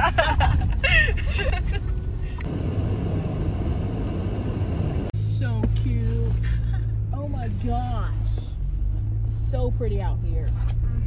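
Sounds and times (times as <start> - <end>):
voices and laughter: 0.0 - 2.3
engine and road rumble: 0.0 - 11.0
steady low hum: 0.0 - 11.0.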